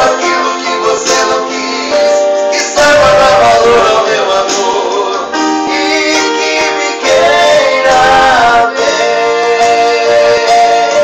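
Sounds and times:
duet singing with accompaniment: 0.0 - 11.0.

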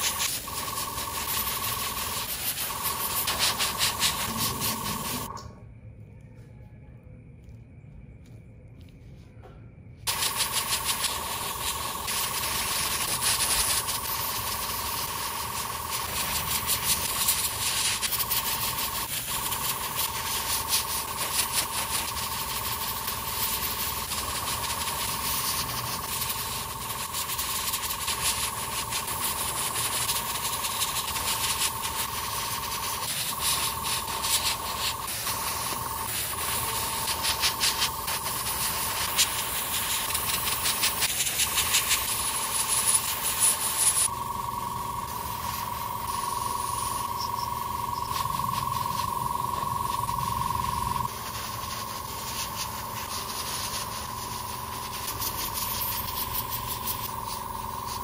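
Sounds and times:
airbrush air hiss: 0.0 - 5.4, 10.1 - 58.0
steady whine: 0.0 - 58.0.

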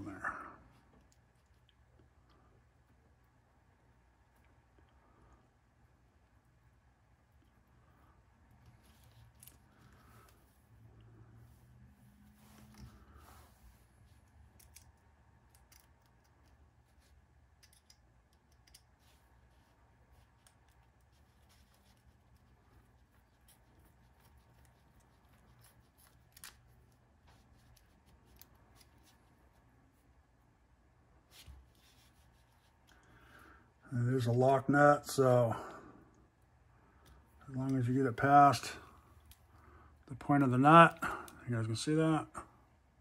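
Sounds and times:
small hardware clicks and ticks: 17.5 - 18.9.

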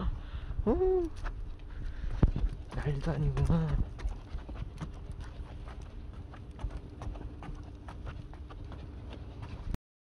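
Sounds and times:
footsteps on the ground: 1.1 - 9.8.

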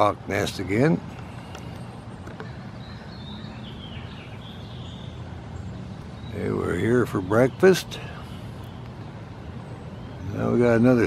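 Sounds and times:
distant road traffic: 0.0 - 11.0.

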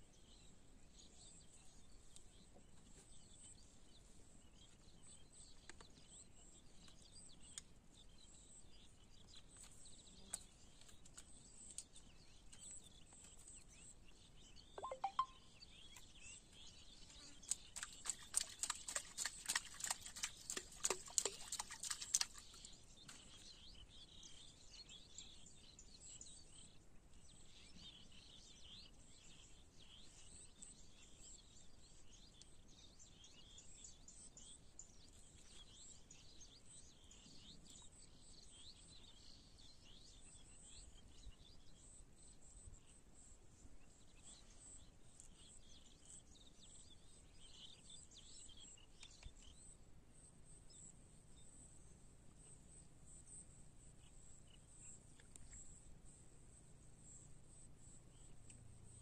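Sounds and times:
brief call: 14.8 - 15.4
sharp clicks or chirps: 14.8 - 15.4.

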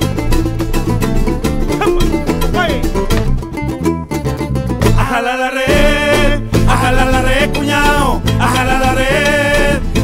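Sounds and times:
folk band playing: 0.0 - 10.0.

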